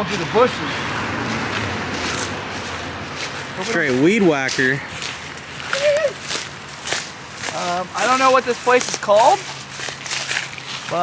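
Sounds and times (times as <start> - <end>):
footsteps through dry grass: 0.0 - 11.0.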